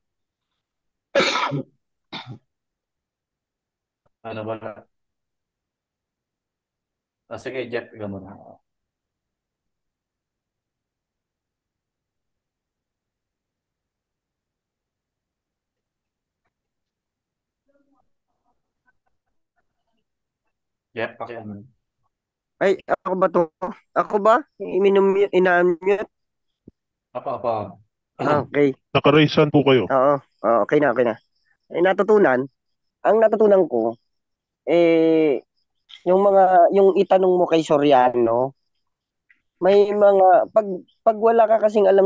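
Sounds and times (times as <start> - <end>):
person coughing: 1.2 - 2.4.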